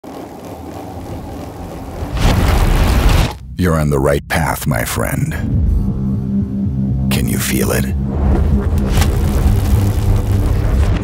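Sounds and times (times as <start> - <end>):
low rumbling hum: 0.0 - 11.0.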